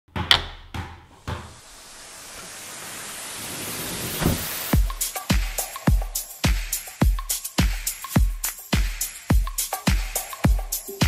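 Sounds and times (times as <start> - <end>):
even hiss: 1.3 - 11.0
car doors shutting: 4.0 - 4.7.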